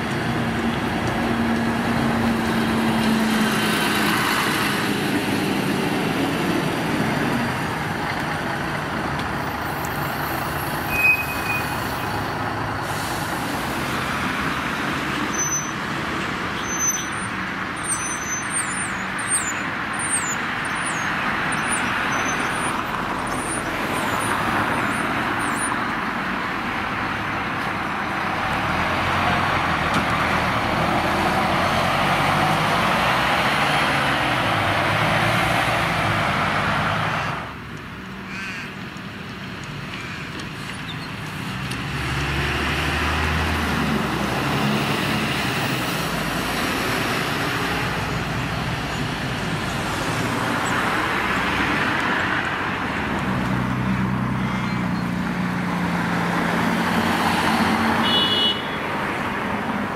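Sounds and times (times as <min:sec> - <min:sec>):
bus diesel engines running: 0:00.0 - 0:59.9
road traffic noise: 0:00.0 - 0:59.9.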